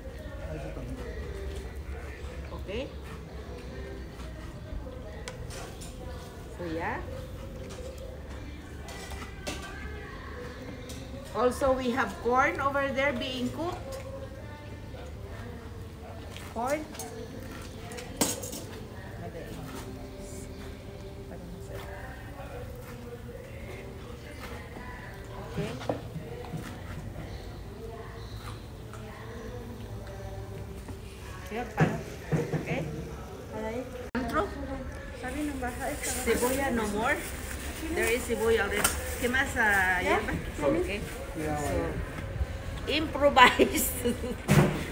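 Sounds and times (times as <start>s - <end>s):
faint background voices: 0.0s - 44.9s.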